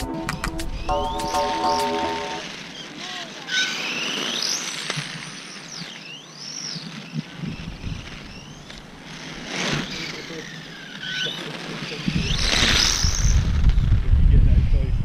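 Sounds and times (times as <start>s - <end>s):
rc car motor whine: 2.5s - 13.8s.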